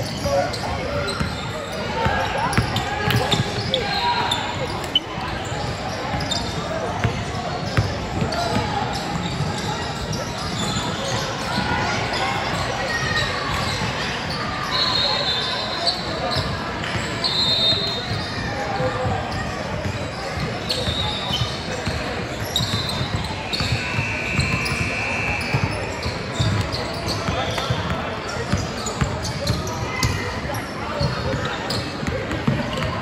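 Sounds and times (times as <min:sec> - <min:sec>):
sneakers squeaking: 0:00.0 - 0:33.0
voices of players and spectators: 0:00.0 - 0:33.0.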